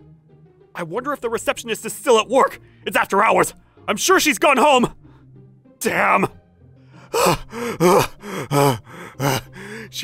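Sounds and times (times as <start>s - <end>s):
man panting: 6.9s - 10.0s.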